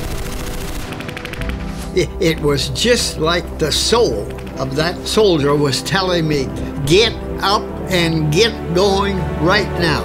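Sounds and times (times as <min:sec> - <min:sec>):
rapid machine-gun fire: 0:00.0 - 0:01.9
low music score: 0:00.9 - 0:10.0.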